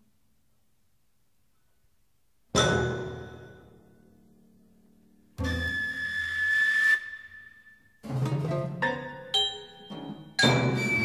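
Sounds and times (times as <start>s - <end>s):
flute holding high note: 5.4s - 7.9s.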